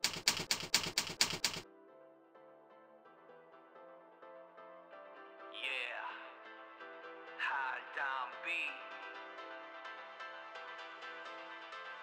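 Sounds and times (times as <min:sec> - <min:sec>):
typewriter keys clacking: 0:00.0 - 0:01.6.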